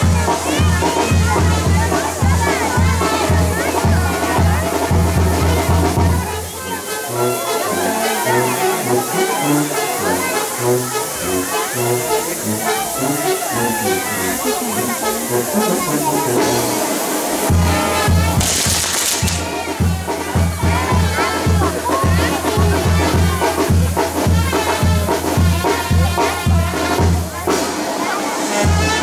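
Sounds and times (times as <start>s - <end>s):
brass band music: 0.0s - 29.0s
fireworks sparks hissing: 5.9s - 22.5s.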